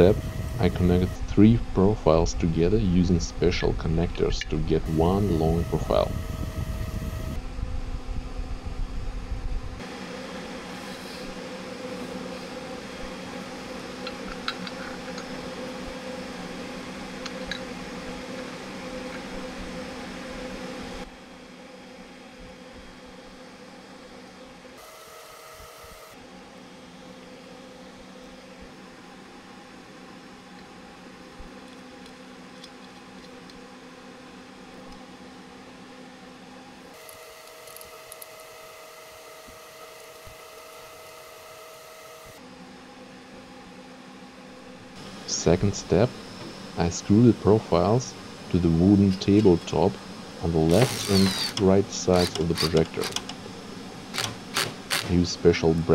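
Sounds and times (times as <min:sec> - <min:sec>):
fans humming: 0:00.0 - 0:55.9
faint clicks of metal parts: 0:31.6 - 0:33.6.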